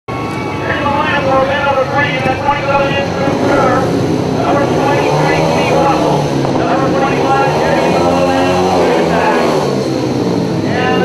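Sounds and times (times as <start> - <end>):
motorcycle engines revving: 0.1 - 11.0.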